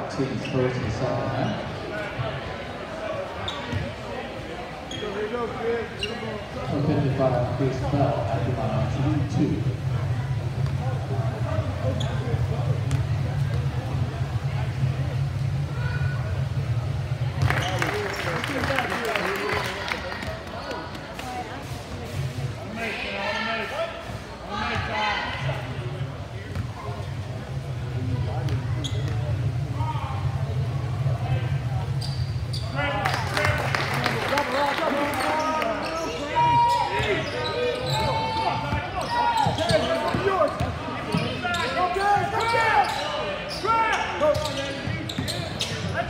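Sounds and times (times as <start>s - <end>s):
spectators' voices: 0.0s - 46.0s
steady low hum: 6.7s - 18.6s, 25.4s - 33.3s.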